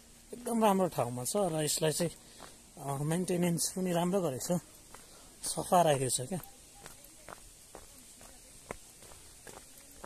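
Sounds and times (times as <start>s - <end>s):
footsteps on a dirt path: 0.6s - 10.0s.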